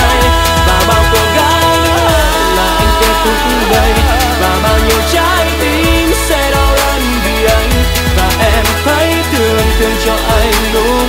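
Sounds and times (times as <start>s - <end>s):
pop ballad with singing: 0.0s - 11.0s.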